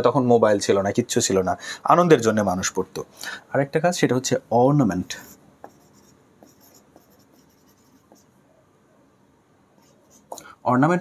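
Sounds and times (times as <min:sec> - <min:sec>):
marker writing on whiteboard: 0:05.0 - 0:08.4, 0:09.8 - 0:10.4
pen tapping on whiteboard: 0:05.6 - 0:08.3.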